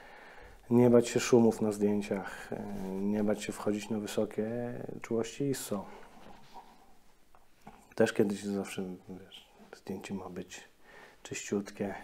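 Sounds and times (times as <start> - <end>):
person speaking: 0.6 - 6.8, 7.6 - 12.0.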